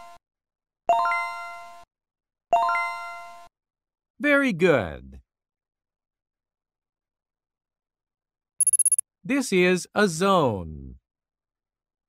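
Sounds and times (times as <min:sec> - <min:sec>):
high pulsing ringing chime: 0:08.6 - 0:09.0.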